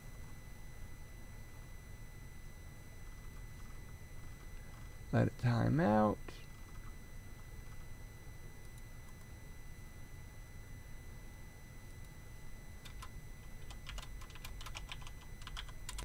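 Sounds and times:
faint steady low hum: 0:00.0 - 0:16.0
computer keyboard clicks: 0:12.8 - 0:16.0.

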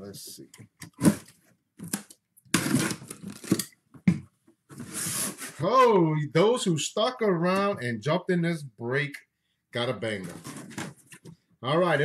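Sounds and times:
packing tape tearing: 0:00.9 - 0:03.7.

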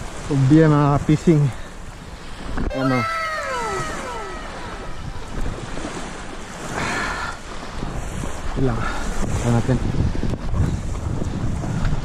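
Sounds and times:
sea washing: 0:00.0 - 0:12.0
wind buffeting microphone: 0:00.0 - 0:12.0
high falling whistle-like call: 0:02.7 - 0:05.3.

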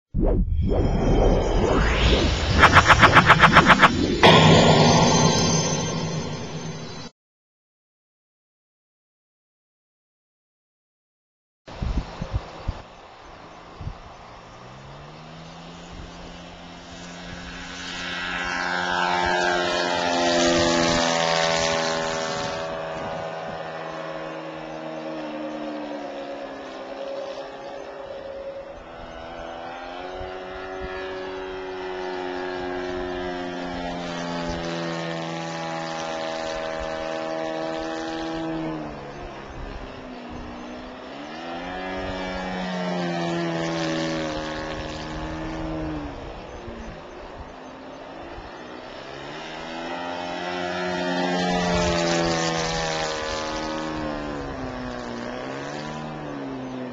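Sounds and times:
model airplane engine running hard: 0:11.7 - 0:56.9.

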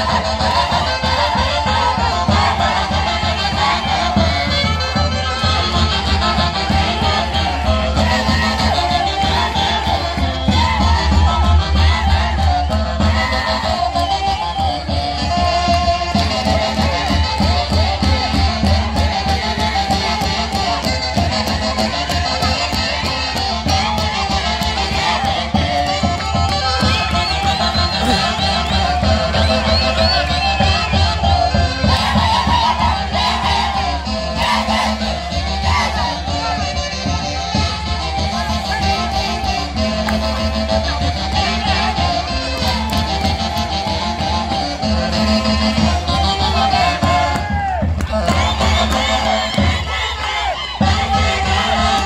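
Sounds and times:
live band playing folk music: 0:00.0 - 0:52.0
people singing: 0:00.0 - 0:52.0
steady drum beat: 0:05.5 - 0:13.6
people yelling: 0:26.9 - 0:36.6.

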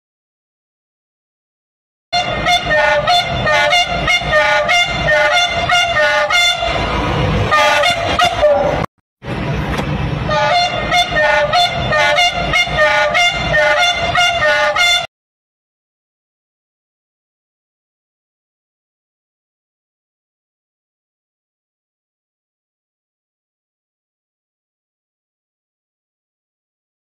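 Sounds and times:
train horn sounding: 0:02.2 - 0:08.9, 0:10.2 - 0:15.1.

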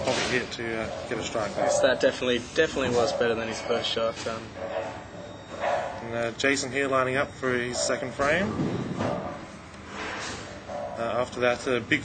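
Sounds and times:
bowling alley din: 0:00.0 - 0:11.3.

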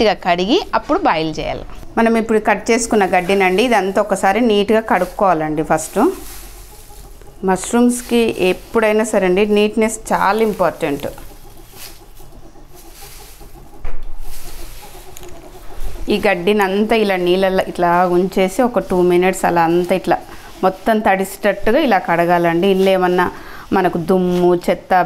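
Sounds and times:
woman speaking: 0:00.0 - 0:06.3, 0:07.4 - 0:11.4, 0:16.0 - 0:25.0
straw rustling in a steel bowl: 0:00.0 - 0:25.0.

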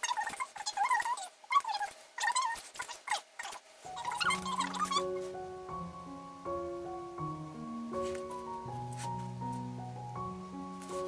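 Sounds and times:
sped up high-pitched voice gabble: 0:00.0 - 0:05.3.

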